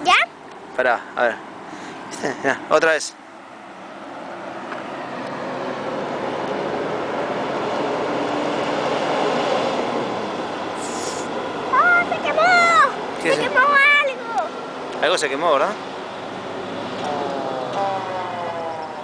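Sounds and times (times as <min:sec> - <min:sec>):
fire engine driving past: 0:01.4 - 0:19.0
short hiss: 0:10.8 - 0:11.3.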